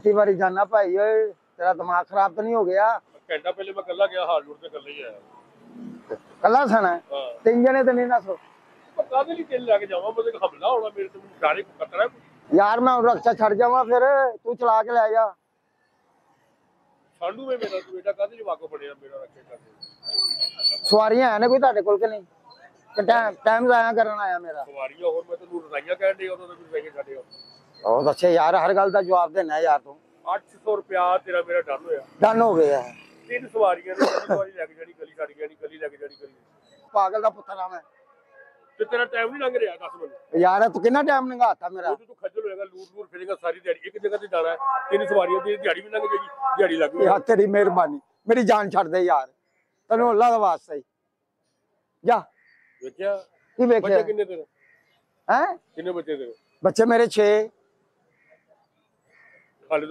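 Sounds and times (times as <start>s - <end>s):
men talking: 0.0s - 15.4s, 17.1s - 19.8s, 20.6s - 50.9s, 52.0s - 54.6s, 55.2s - 57.6s, 59.6s - 59.9s
man talking loudly: 43.9s - 49.2s.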